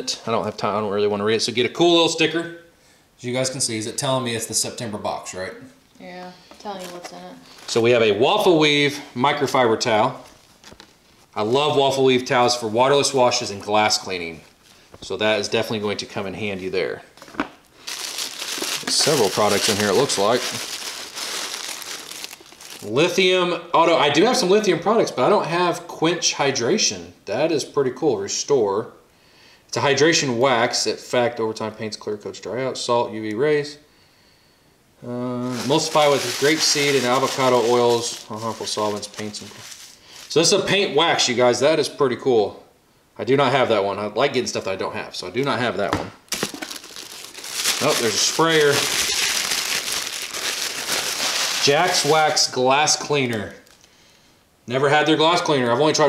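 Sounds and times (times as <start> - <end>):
tissue paper crinkling: 6.8 - 8.0, 10.2 - 11.5, 17.8 - 23.1, 35.4 - 40.7, 46.3 - 53.9.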